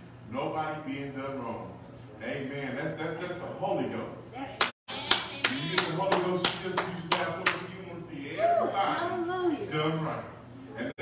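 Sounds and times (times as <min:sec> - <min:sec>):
hands clapping in rhythm: 0:04.6 - 0:07.7.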